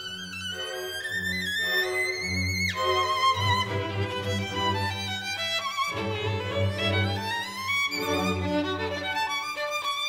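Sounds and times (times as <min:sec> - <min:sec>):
low sustained orchestral strings: 0:00.0 - 0:10.0
solo violin: 0:00.0 - 0:10.0.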